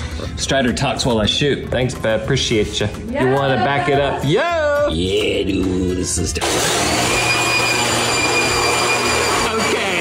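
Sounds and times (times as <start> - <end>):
leaf blower running: 6.4 - 10.0.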